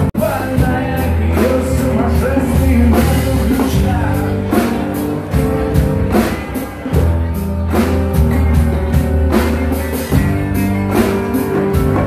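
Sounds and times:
bass line: 0:00.0 - 0:12.0
steady drum beat: 0:00.0 - 0:12.0.

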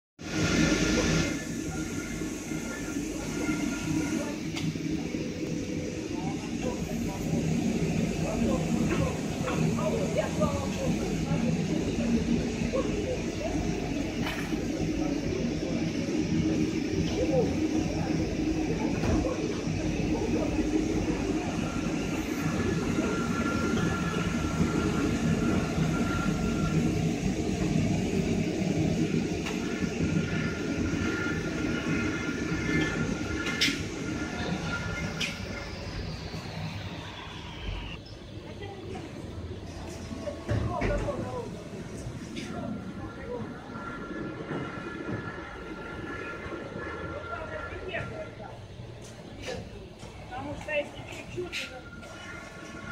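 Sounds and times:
faint machine whine: 0:00.2 - 0:52.9
machines rumbling and humming: 0:00.2 - 0:52.9.

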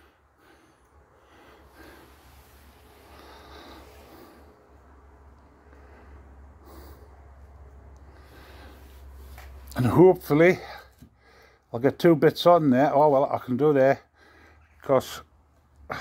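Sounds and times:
person breathing close: 0:00.0 - 0:09.8, 0:10.6 - 0:11.7
low steady hum: 0:00.0 - 0:16.0.

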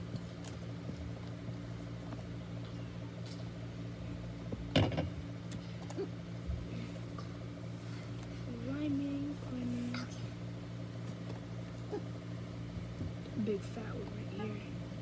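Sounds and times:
steady low room hum: 0:00.0 - 0:15.0.

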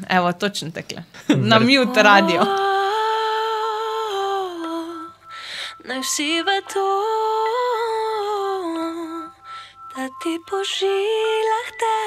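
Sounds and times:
woman singing pop ballad: 0:01.4 - 0:12.0
singer breathing in: 0:05.2 - 0:05.8, 0:09.4 - 0:09.9.

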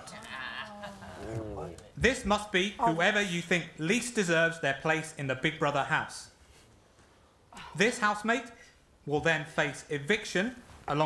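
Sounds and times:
woman moaning: 0:00.0 - 0:01.8.

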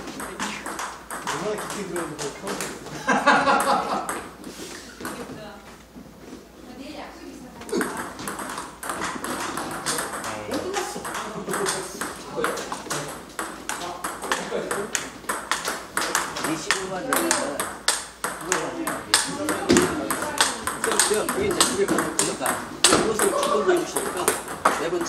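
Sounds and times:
ball bouncing on table: 0:00.0 - 0:02.9, 0:03.5 - 0:04.4, 0:05.0 - 0:05.4, 0:07.6 - 0:25.0
table tennis ball hitting paddles: 0:00.0 - 0:05.4, 0:07.6 - 0:25.0.

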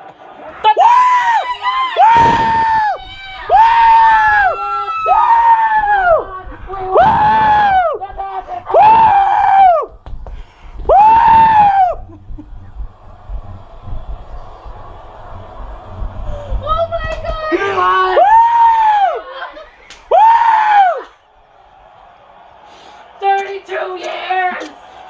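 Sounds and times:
fans screaming: 0:00.1 - 0:25.0.

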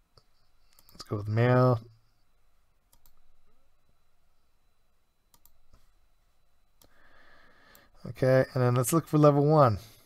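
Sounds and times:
computer mouse clicks: 0:00.2 - 0:01.1, 0:02.9 - 0:03.2, 0:05.3 - 0:05.8.

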